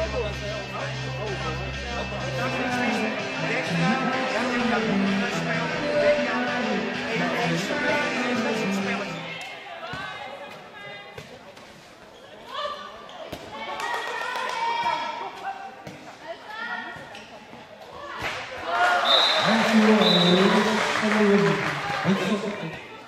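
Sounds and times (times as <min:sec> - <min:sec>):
crowd noise and shouting: 0:00.0 - 0:23.0
high whistle-like tone: 0:19.0 - 0:19.4.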